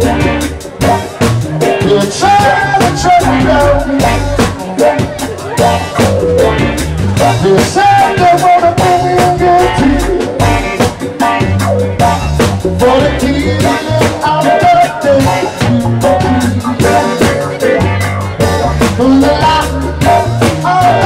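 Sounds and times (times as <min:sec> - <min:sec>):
live band playing: 0:00.0 - 0:21.0
man singing: 0:00.0 - 0:21.0.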